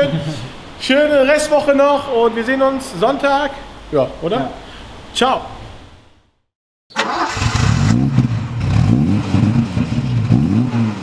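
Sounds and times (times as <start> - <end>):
engine revving: 7.0 - 11.0.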